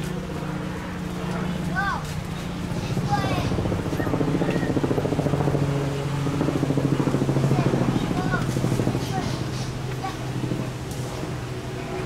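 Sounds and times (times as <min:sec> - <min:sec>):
motor running with pulsing beat: 0:00.0 - 0:12.0.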